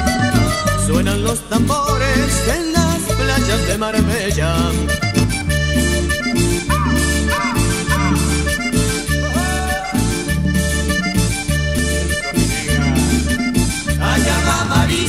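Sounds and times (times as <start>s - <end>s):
accordion melody: 0.0s - 15.0s
percussion beat: 0.0s - 15.0s
repeating bass line: 0.0s - 15.0s.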